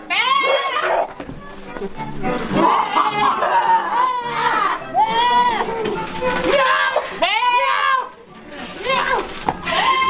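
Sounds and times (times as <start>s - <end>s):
high-pitched wavering human cries: 0.1s - 1.1s, 2.6s - 8.2s.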